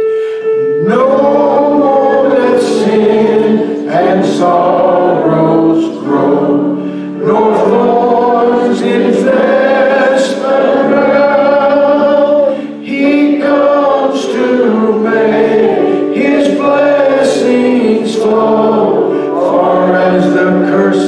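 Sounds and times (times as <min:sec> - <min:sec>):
keyboard accompaniment: 0:00.0 - 0:21.0
congregation singing a hymn: 0:00.6 - 0:21.0.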